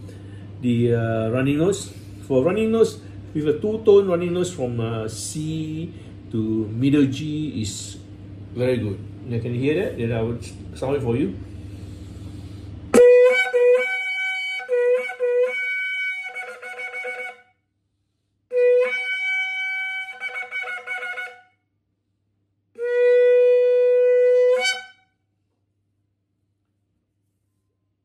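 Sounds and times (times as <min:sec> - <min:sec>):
horn blasts: 0:12.9 - 0:17.5, 0:18.5 - 0:21.5, 0:22.8 - 0:25.1.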